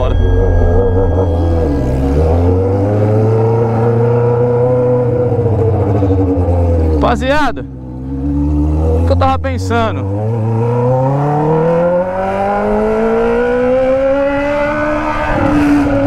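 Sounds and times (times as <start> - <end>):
motorcycle engine revving: 0.0 - 16.0.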